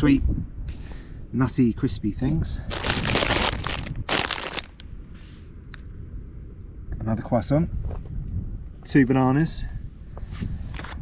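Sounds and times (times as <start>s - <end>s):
plastic packaging crinkling: 2.7s - 4.8s.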